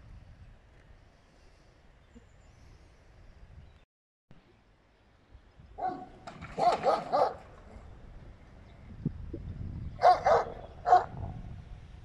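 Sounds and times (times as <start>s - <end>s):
dog barking: 5.8s - 7.4s, 10.0s - 11.2s.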